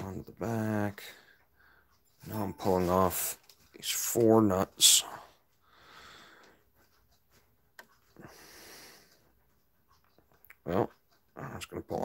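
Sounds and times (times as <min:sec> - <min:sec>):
faint breaths: 0:01.0 - 0:02.2, 0:04.9 - 0:10.0.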